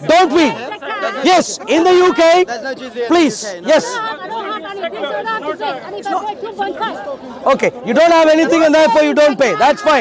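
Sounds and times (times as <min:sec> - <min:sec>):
crowd of people talking: 0:00.0 - 0:10.0.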